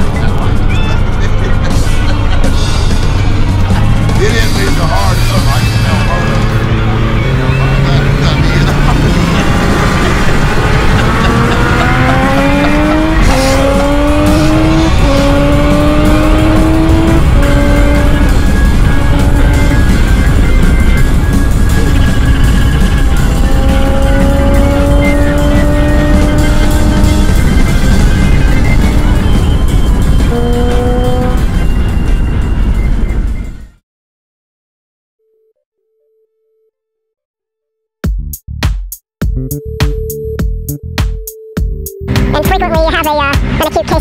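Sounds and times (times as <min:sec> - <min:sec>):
motorcycle engine accelerating: 0:00.0 - 0:33.4.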